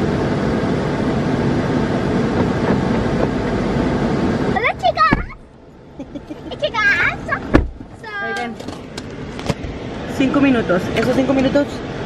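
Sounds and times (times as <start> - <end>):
girl's high-pitched vocal sound: 4.6 - 5.4, 6.5 - 8.5.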